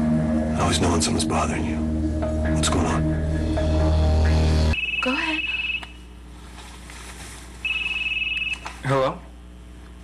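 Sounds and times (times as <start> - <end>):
cell phone ringing tone: 4.8 - 6.0, 7.6 - 8.6.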